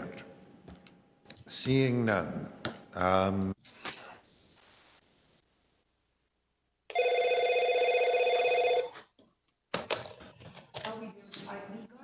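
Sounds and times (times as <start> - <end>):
electronic ring: 6.9 - 8.9.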